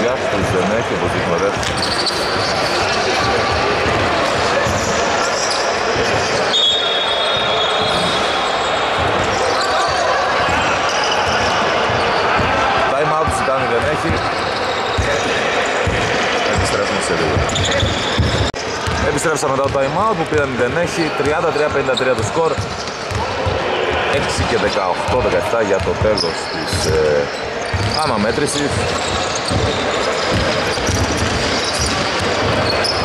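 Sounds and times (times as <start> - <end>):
voices echoing in a hall: 0.0 - 33.0
basketball bouncing on wooden floor: 15.8 - 19.0, 22.6 - 23.6, 28.7 - 33.0.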